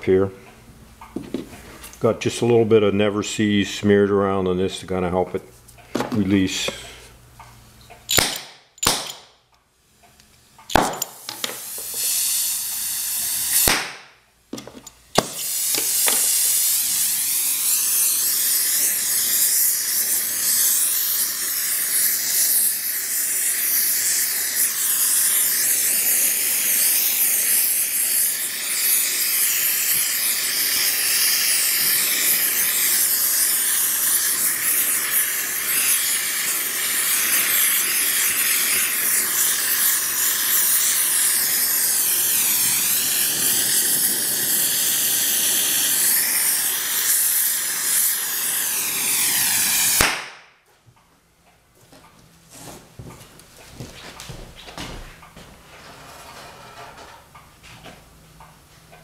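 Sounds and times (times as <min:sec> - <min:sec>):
gas torch flame hissing: 0:10.0 - 0:50.4.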